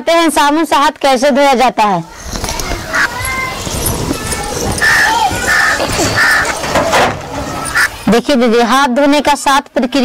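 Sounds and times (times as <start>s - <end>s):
outdoor background noise: 0.0s - 10.0s
thin bird calls: 2.2s - 6.6s, 7.5s - 8.1s
crow cawing: 4.8s - 6.6s, 7.7s - 8.0s.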